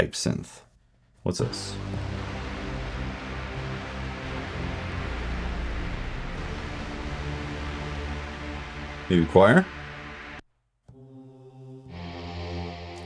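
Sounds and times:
low sustained synth: 1.4 - 10.4.

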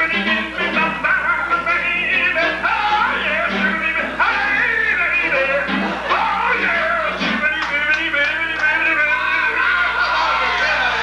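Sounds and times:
live band playing: 0.0 - 8.5.

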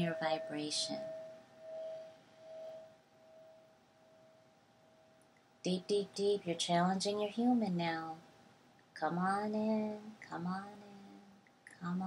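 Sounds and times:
meditation bell ringing: 0.0 - 5.2.

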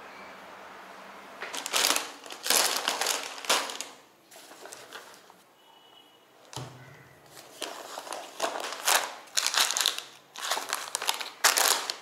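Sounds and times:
grocery bag crinkling: 1.5 - 5.1, 7.4 - 12.0.

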